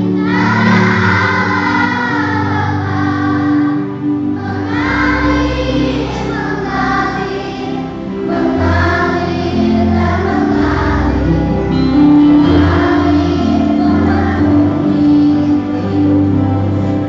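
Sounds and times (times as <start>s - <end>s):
children's choir singing: 0.0s - 17.0s
sustained low accompaniment notes: 0.0s - 17.0s.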